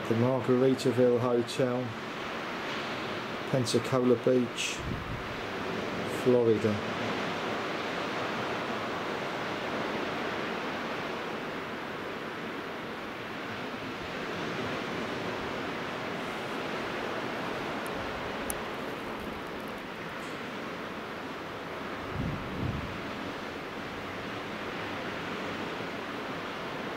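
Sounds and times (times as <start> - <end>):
surf breaking on beach: 0.0 - 26.9
wind rumble on microphone: 4.7 - 11.2, 21.9 - 25.7.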